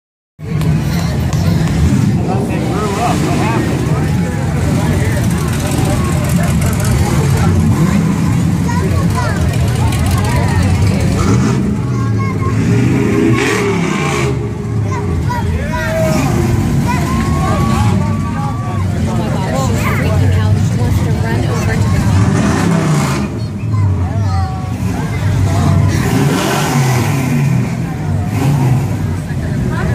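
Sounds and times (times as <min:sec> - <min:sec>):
crowd chatter: 0:00.4 - 0:29.9
hot rod engines rumbling: 0:00.4 - 0:29.9.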